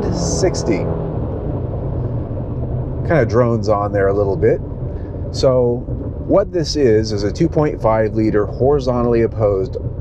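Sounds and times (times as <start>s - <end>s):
car engine droning: 0.0s - 10.0s.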